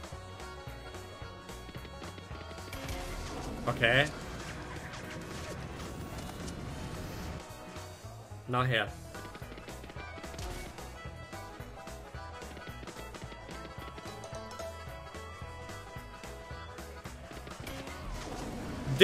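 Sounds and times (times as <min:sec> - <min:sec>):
game background music: 0:00.0 - 0:19.0.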